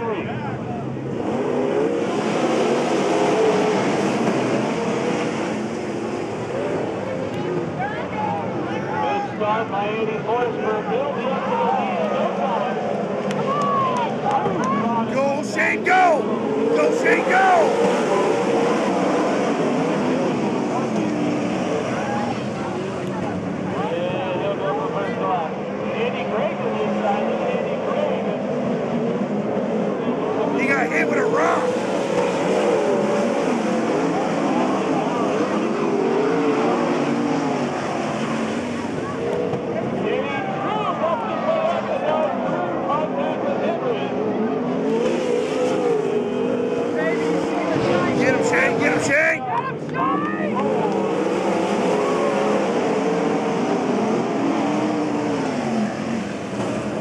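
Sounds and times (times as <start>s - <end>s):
race car engines revving: 0.0s - 57.0s.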